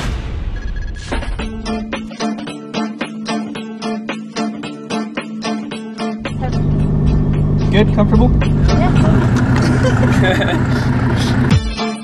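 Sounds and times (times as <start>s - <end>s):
car engine running hard: 6.2s - 11.6s
woman laughing: 8.6s - 11.5s.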